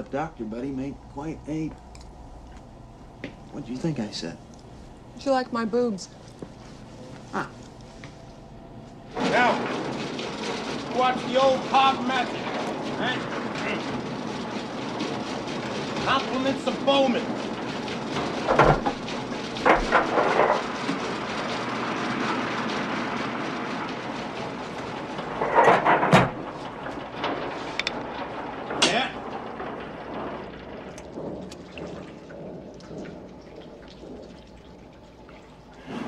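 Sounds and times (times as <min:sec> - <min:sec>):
bangs on metal cabinet: 0:17.3 - 0:34.3.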